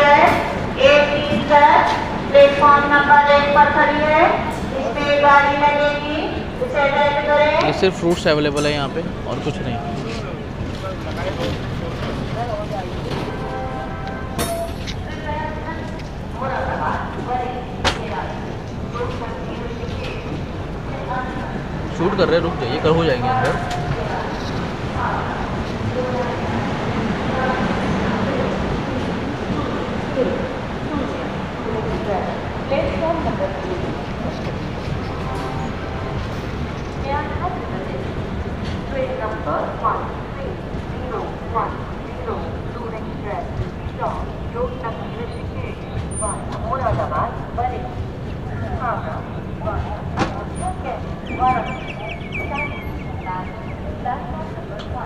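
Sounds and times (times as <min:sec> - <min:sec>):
train wheels rumbling: 0:00.0 - 0:55.0.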